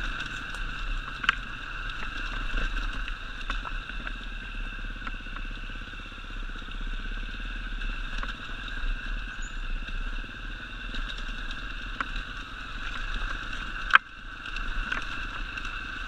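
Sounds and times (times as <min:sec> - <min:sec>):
dirt bike engine running: 0:00.0 - 0:16.0.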